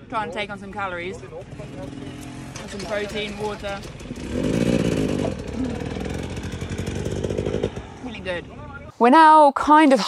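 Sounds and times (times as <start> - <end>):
motorcycle engine running: 1.1 - 8.9.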